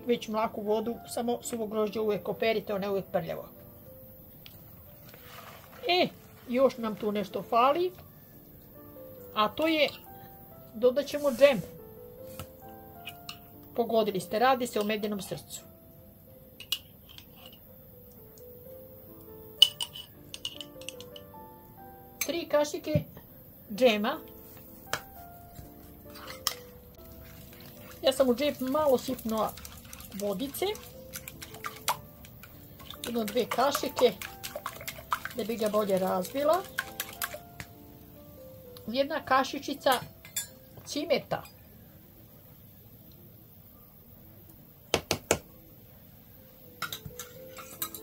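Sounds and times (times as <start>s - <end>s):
soft background music: 0.0s - 48.0s
metal spoon clinking on bowl: 19.6s - 21.3s, 39.9s - 40.7s, 46.8s - 48.0s
jam dripping into batter: 27.0s - 37.8s.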